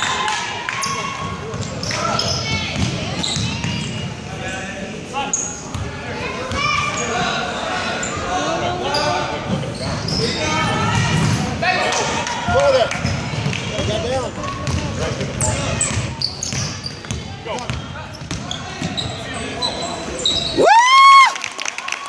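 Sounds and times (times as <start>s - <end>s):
chatter and calls of people: 0.0s - 20.7s
basketball bouncing on hardwood floor: 2.7s - 3.8s.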